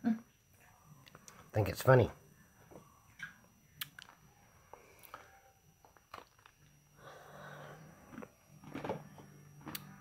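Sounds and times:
chewing crunchy snack: 6.0 - 6.7, 8.1 - 9.0.

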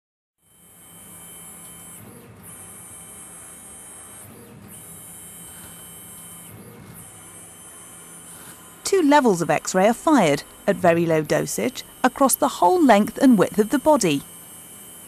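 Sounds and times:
scanner motor whining: 0.4 - 15.0.

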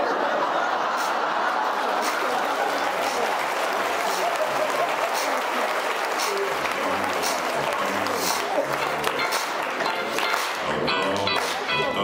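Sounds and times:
audience applauding: 0.7 - 11.8.

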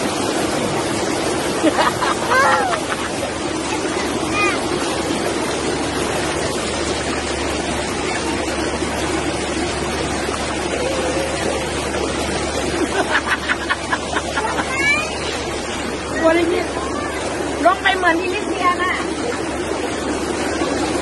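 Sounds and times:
waterfall stream over rocks: 0.0 - 21.0
faint voices: 7.5 - 12.6.

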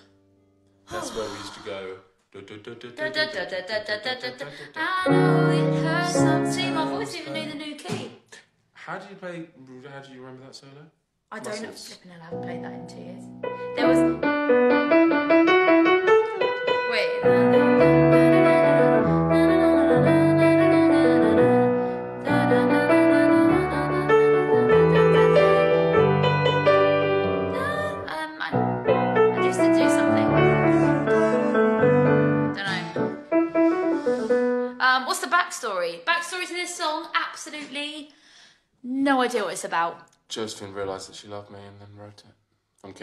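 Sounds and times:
piano playing single notes: 12.3 - 21.5, 24.2 - 34.8.

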